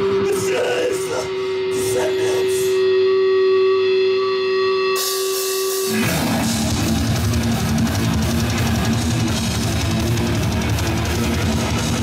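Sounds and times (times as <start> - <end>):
death metal band playing: 0.0 - 12.0
electric guitar note ringing: 0.0 - 12.0
cymbals: 4.9 - 9.4.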